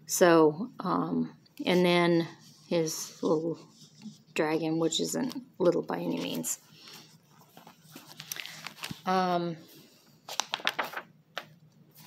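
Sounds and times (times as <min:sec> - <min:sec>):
paper notebook rustling: 0:02.4 - 0:09.3, 0:10.3 - 0:12.0.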